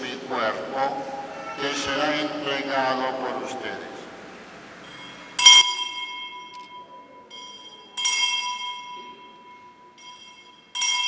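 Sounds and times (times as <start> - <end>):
small bell ringing: 4.8 - 11.0.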